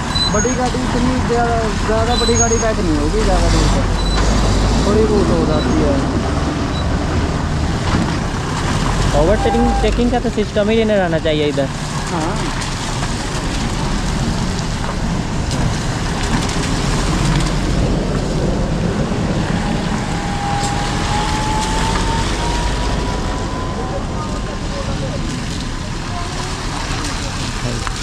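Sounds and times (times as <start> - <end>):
vehicle engines around: 0.0 - 28.0
wind rumbling on microphone: 0.0 - 28.0
faint rising whine: 18.4 - 25.5.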